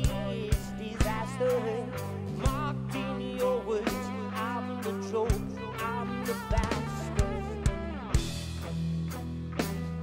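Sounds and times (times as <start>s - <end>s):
electric guitar melody: 0.0s - 10.0s
sustained bass notes: 0.0s - 10.0s.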